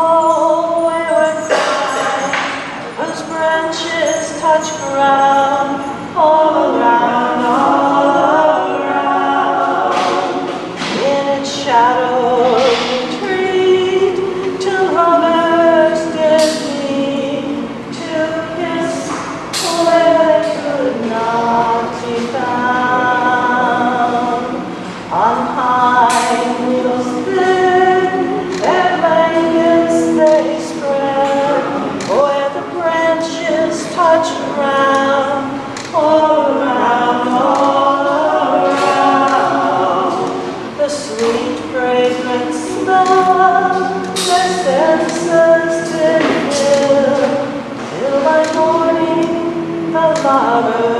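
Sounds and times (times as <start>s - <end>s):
busy hall background noise: 0.0s - 50.9s
woman singing unaccompanied: 0.0s - 50.9s.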